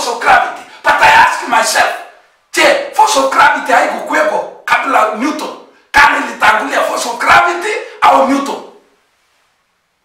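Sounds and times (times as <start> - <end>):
man preaching loudly: 0.0 - 8.8.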